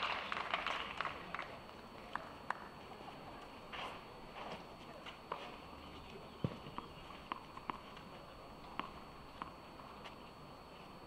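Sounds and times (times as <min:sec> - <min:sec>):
footsteps on clay court: 0:02.5 - 0:11.0
tennis ball bouncing: 0:06.4 - 0:08.0, 0:08.6 - 0:10.2.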